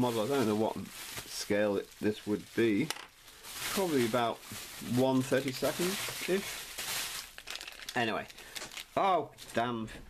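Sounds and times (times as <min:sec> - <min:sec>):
plastic packaging crinkling: 0:00.0 - 0:09.2.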